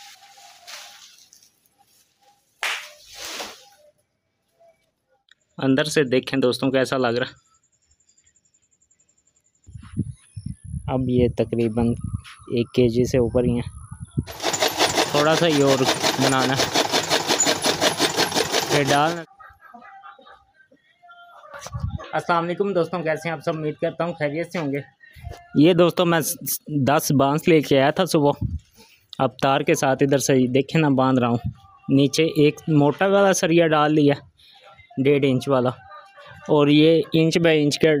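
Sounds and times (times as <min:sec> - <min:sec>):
loud swish of leaves: 0:00.0 - 0:02.0, 0:02.6 - 0:03.8
leafy stalks rustling: 0:00.0 - 0:03.8
chaff cutter chopping stalks: 0:14.3 - 0:19.2.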